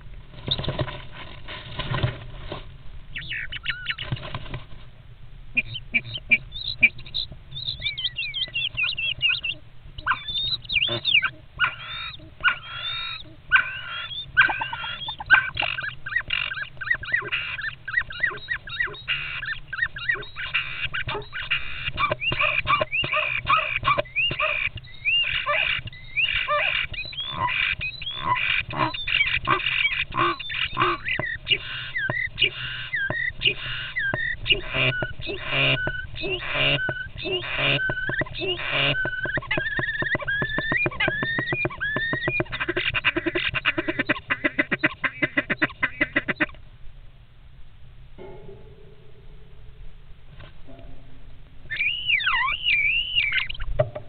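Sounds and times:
starlings squawking and whistling: 3.1 - 4.2, 5.6 - 46.6, 51.6 - 53.8.

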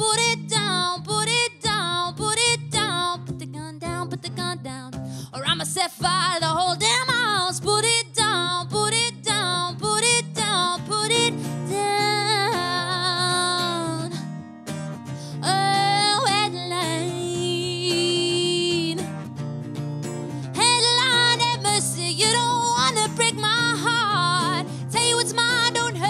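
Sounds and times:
woman singing: 0.0 - 14.3, 15.3 - 19.2, 20.5 - 26.0
strummed acoustic guitar: 0.0 - 26.0.

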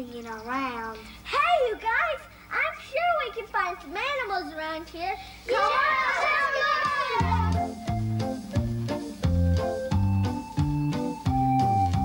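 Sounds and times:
children shouting together: 5.5 - 7.7.

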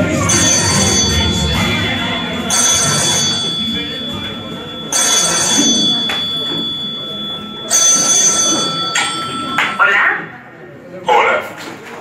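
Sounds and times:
telephone ringing: 0.0 - 10.4
voices: 0.0 - 11.7.

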